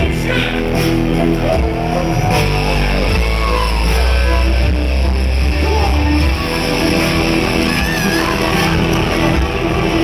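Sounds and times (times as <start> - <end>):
electronic dance music: 0.0 - 10.0
heavy bass line: 0.0 - 10.0.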